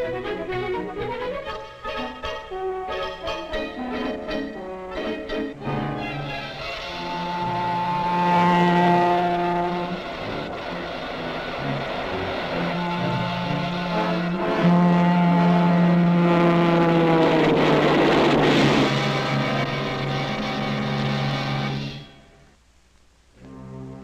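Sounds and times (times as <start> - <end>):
train air horn blasts: 3.9 - 22.2
loud burst of noise: 6.3 - 22.6.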